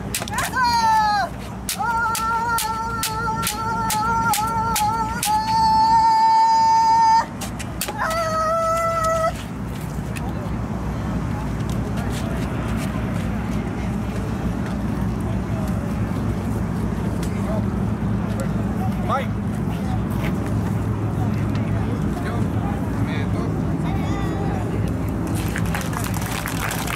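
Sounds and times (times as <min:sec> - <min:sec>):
outdoor crowd murmur: 0:00.0 - 0:26.9.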